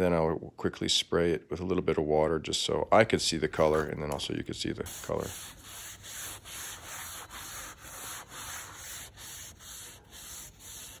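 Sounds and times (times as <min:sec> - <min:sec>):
sandpaper sanding wood: 0:04.8 - 0:11.0.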